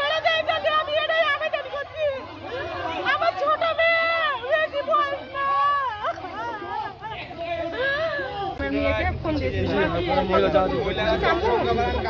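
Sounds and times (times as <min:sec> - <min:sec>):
woman wailing: 0:07.7 - 0:08.5.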